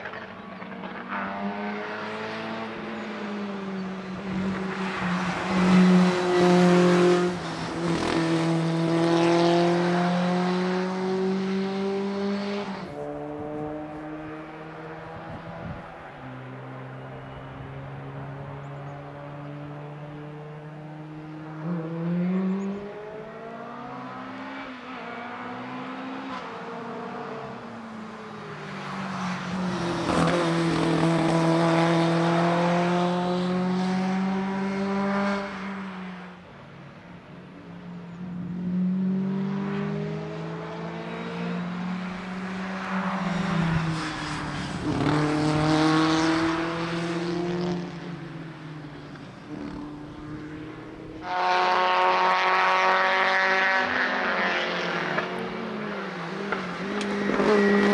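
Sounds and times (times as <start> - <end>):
race car engine accelerating: 4.2 - 15.6, 38.7 - 48.1, 49.5 - 57.9.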